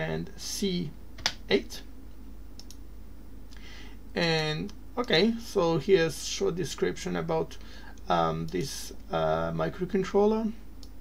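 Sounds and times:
low electrical hum: 0.0 - 11.0
computer mouse clicks: 2.6 - 2.8.

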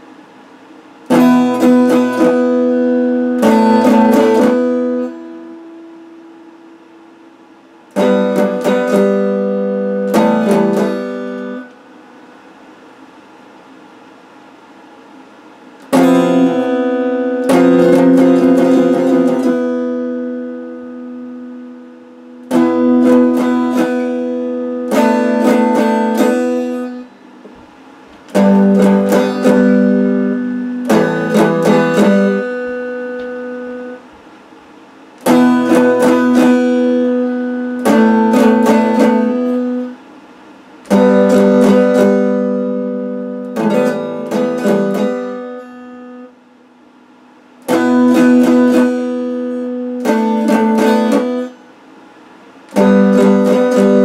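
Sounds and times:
electric guitar strumming chords: 1.0 - 12.0, 15.8 - 46.6, 47.2 - 51.8, 52.5 - 54.0.

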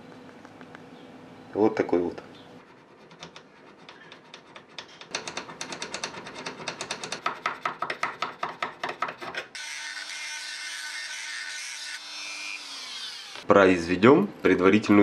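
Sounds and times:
hand file filing brass: 2.6 - 12.0
high-speed rotary tool running: 9.6 - 13.4.

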